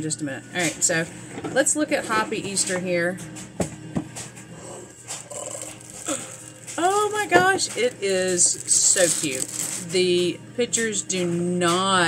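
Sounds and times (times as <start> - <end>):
packaging rustling: 4.6 - 10.0.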